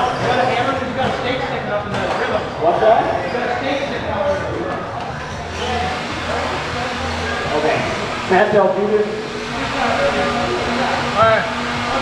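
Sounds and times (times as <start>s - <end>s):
people talking indistinctly: 0.0s - 12.0s
steady rushing background noise: 4.5s - 12.0s.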